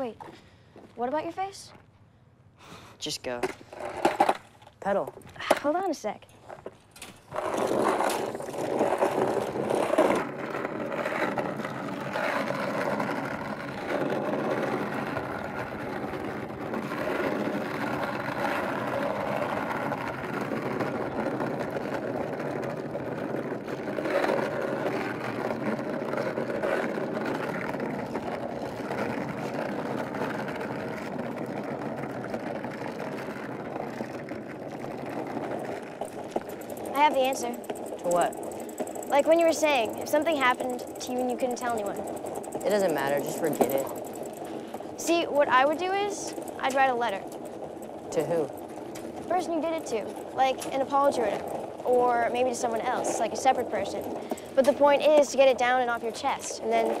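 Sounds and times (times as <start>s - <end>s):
skateboard wheels rolling on asphalt: 0.0s - 57.0s.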